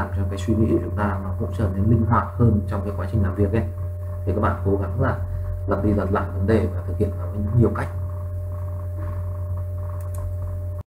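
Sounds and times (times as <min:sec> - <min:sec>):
low electrical hum: 0:00.0 - 0:10.8.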